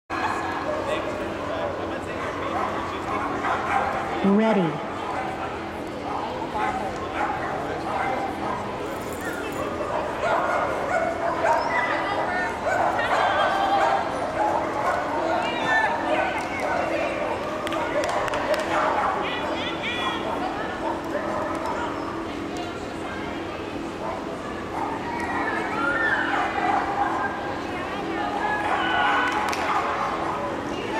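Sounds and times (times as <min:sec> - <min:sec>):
crowd chatter in a hall: 0:00.1 - 0:30.9
dog barking: 0:03.4 - 0:04.0, 0:06.6 - 0:07.4.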